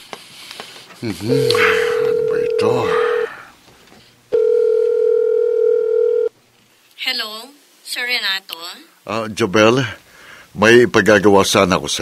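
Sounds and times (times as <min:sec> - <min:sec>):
telephone ringback tone: 0:01.3 - 0:03.3, 0:04.4 - 0:06.3.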